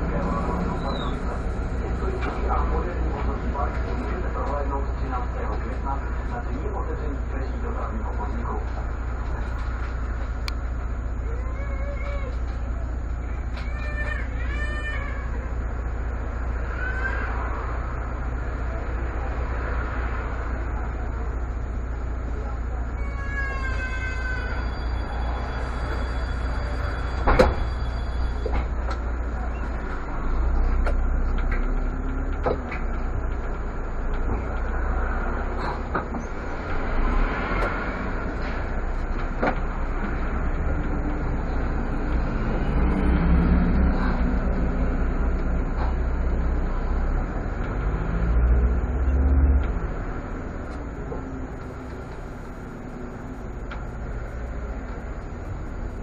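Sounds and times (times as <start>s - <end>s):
bus engine and road rumble: 0.0s - 56.0s.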